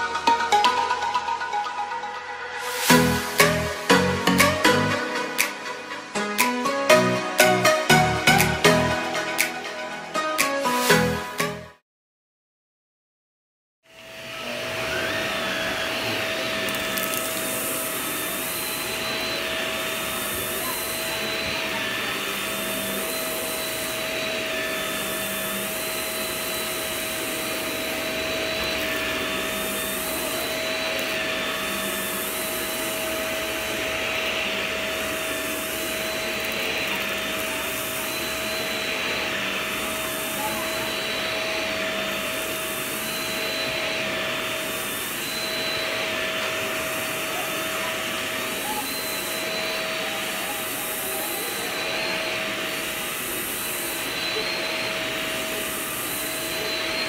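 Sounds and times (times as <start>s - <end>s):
vacuum cleaner running: 0.0s - 11.6s, 13.9s - 57.0s.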